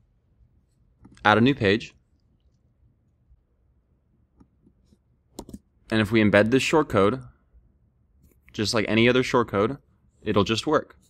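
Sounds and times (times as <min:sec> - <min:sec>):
man talking: 0:01.2 - 0:02.0, 0:05.9 - 0:07.3, 0:08.5 - 0:11.0
computer clicks: 0:05.3 - 0:05.6.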